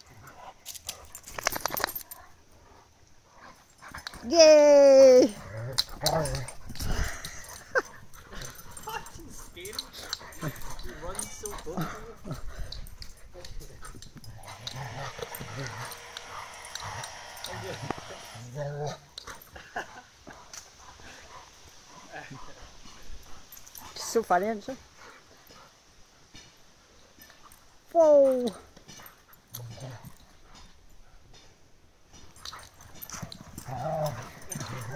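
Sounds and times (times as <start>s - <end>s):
dogs growling: 5.3s - 23.9s, 29.5s - 30.8s, 32.4s - 34.9s
dogs scuffling: 32.2s - 34.9s.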